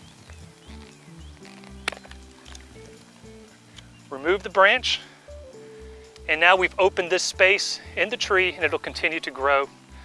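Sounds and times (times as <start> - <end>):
background music with steady beat: 0.0 - 10.0
pruners snipping a branch: 0.2 - 3.1.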